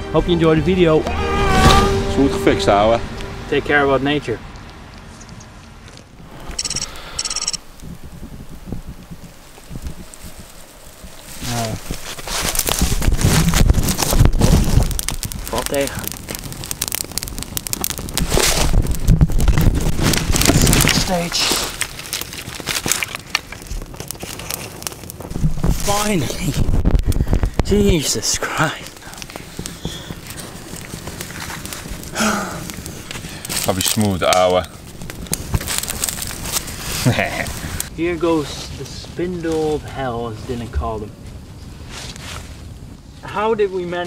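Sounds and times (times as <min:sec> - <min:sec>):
fire crackling: 0:00.1 - 0:44.0
rushing flames: 0:00.4 - 0:44.0.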